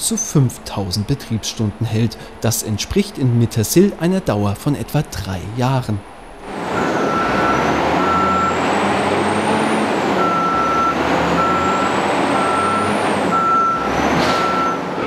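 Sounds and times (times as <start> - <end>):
diesel engine running: 0.0 - 15.0
reversing alarm beeping: 6.8 - 8.7, 10.2 - 14.9.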